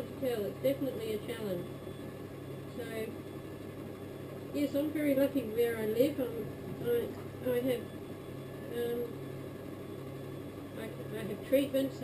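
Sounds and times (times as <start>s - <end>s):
potter's wheel motor humming: 0.0s - 12.0s.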